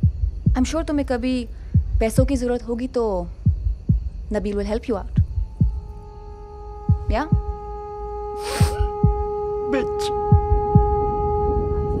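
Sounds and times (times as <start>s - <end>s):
low heartbeat-like pulse: 0.0s - 7.8s, 8.4s - 12.0s
steady drone tones: 0.0s - 12.0s.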